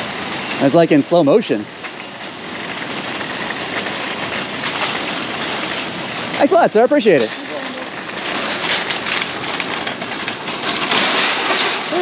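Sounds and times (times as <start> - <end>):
shopping cart rolling on asphalt: 0.0 - 12.0.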